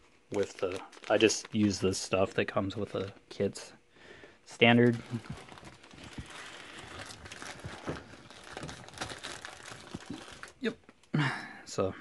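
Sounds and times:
plastic packaging crinkling: 0.3s - 3.1s, 4.6s - 10.7s.

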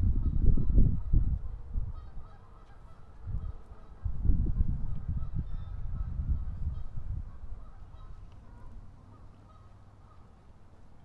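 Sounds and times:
low microphone rumble: 0.0s - 2.2s
distant geese honking: 0.2s - 4.2s, 5.0s - 11.0s.

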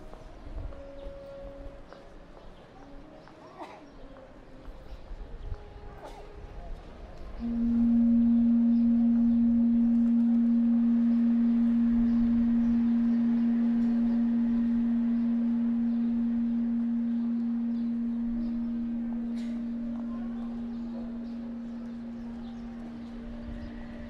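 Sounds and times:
low musical tone: 0.0s - 24.0s.

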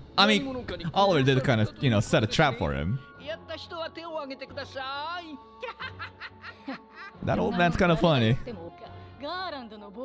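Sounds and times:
quiet background music: 0.0s - 10.0s
man speaking: 0.2s - 3.0s, 7.2s - 8.5s.

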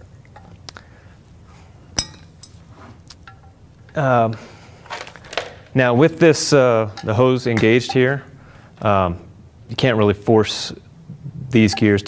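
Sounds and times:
metallic clink with ringing: 2.0s - 2.6s.

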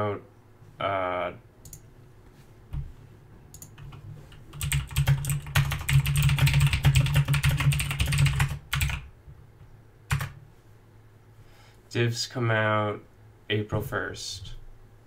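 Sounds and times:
keyboard typing: 1.6s - 1.8s, 3.5s - 9.1s, 10.1s - 10.4s.

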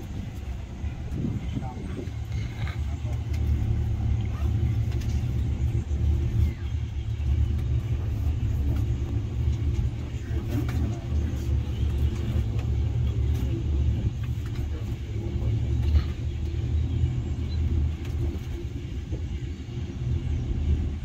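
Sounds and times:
cable car cabin rumble: 0.0s - 21.0s.

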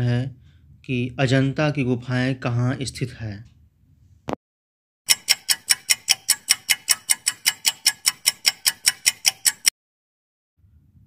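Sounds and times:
clock ticking fast: 5.1s - 9.7s.

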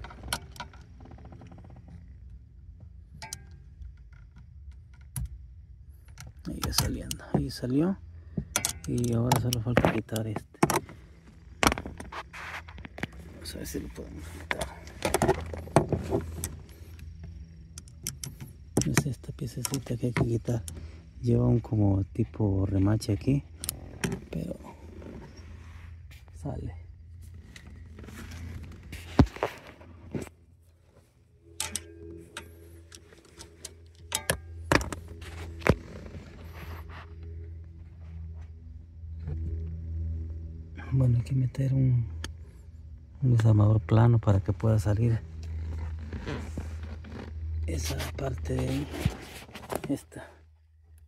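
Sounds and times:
low steady hum: 0.0s - 51.0s
sharp clicks of handled parts: 8.4s - 10.9s, 17.7s - 20.8s, 31.6s - 35.2s.

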